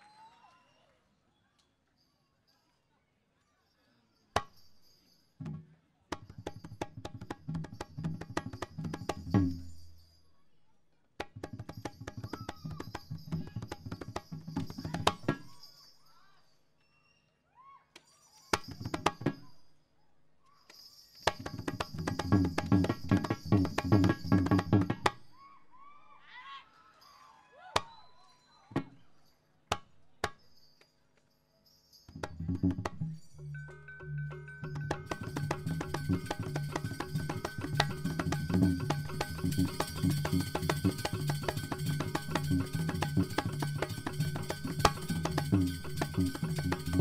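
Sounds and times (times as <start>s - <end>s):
drum beats: 5.4s - 9.7s, 11.2s - 15.6s, 18.6s - 19.5s, 21.3s - 25.2s, 32.2s - 47.0s
sharp percussion strikes: 6.2s - 10.1s, 11.2s - 15.8s, 18.6s - 19.6s, 21.2s - 25.2s, 32.0s - 47.0s
struck metallophones: 6.4s - 10.1s, 11.5s - 15.8s, 21.3s - 25.2s, 32.1s - 47.0s.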